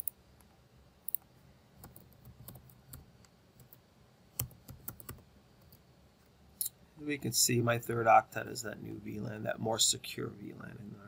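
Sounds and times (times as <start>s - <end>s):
computer keyboard keystrokes: 4.4s - 5.2s.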